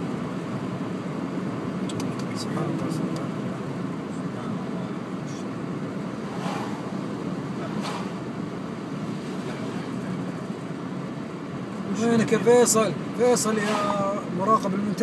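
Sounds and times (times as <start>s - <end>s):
road and engine noise in car: 0.0s - 15.0s.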